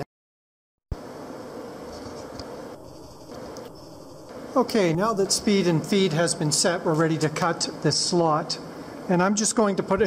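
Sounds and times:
workshop background noise: 0.9s - 10.0s.

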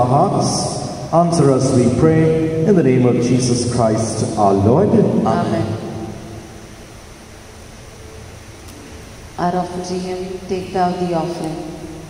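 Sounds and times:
voice echo: 0.0s - 6.9s, 8.8s - 12.0s
room hiss and hum: 0.0s - 12.0s.

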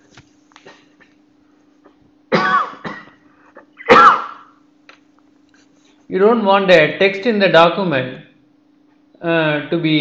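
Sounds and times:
man coughing: 2.3s - 4.6s.

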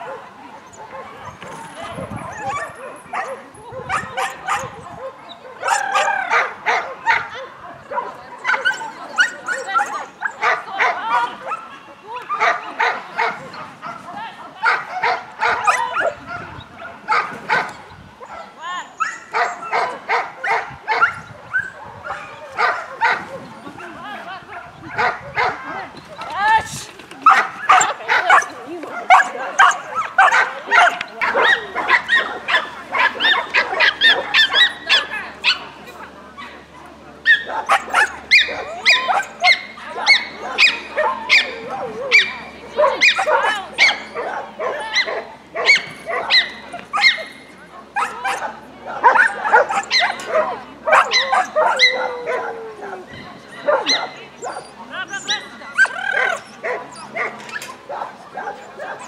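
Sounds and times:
dog barking excitedly: 0.0s - 11.6s, 14.6s - 17.7s, 18.3s - 23.4s, 24.5s - 25.6s, 27.2s - 35.6s, 37.3s - 53.0s, 53.6s - 59.0s.

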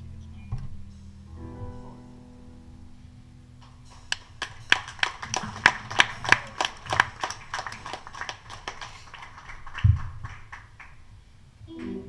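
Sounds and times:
audience applause: 3.9s - 11.1s.

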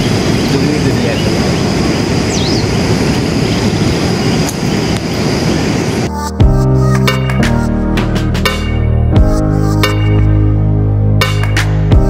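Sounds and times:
high bird chirp: 0.0s - 4.5s
waterfall roar: 0.0s - 6.1s.

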